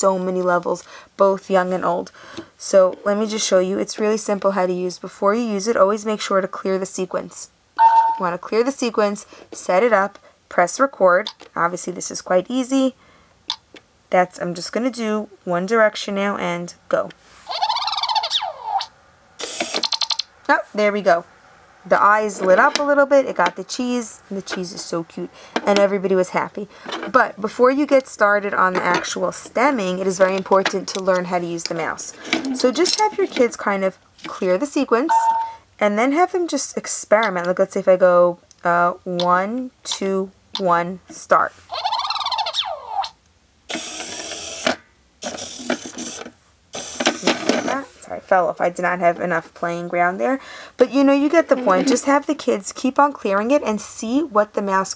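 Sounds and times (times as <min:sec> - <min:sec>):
small motor whirring: 0:19.4 - 0:20.2, 0:43.7 - 0:46.2, 0:46.8 - 0:47.3.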